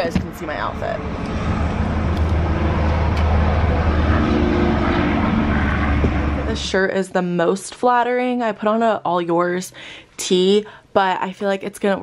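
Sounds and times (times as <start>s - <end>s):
motor vehicle rumble: 0.0s - 7.0s.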